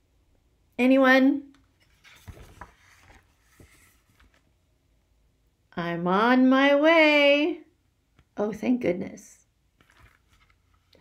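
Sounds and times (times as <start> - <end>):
book page turning: 1.7 - 4.6, 9.8 - 11.0
soft knocks of book handling: 1.8 - 4.5.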